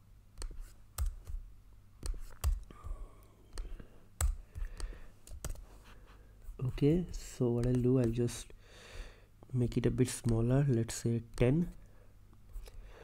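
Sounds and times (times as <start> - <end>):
mouse and keyboard clicks: 2.0 - 2.7, 7.6 - 8.2
man speaking: 6.6 - 8.5, 9.5 - 11.8.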